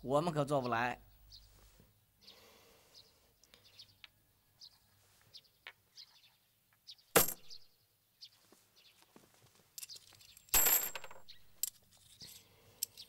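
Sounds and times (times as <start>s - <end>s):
faint bird chirps: 0.6s - 9.1s.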